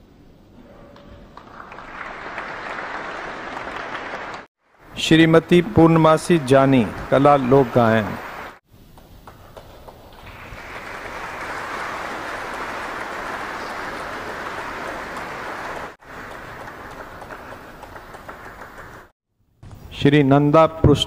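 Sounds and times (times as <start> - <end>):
audience applauding: 1.3 - 8.6, 9.4 - 19.1.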